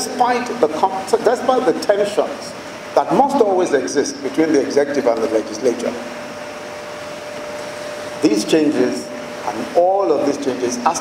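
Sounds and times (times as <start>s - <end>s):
room noise hiss: 0.0s - 11.0s.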